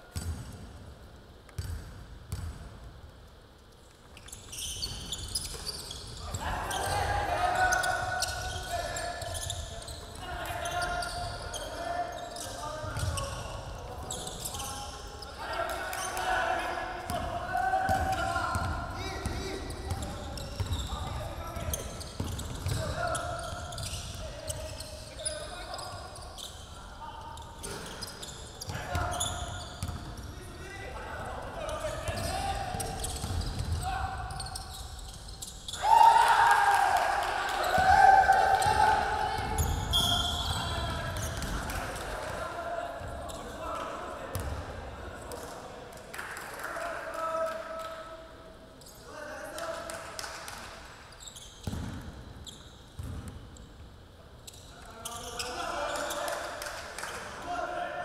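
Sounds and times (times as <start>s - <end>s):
loud shouting: 35.7s - 40.5s
players calling out: 35.7s - 44.7s.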